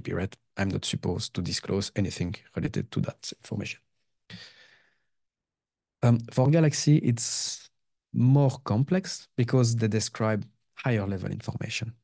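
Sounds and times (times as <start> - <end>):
breath into microphone: 4.3 - 5.1.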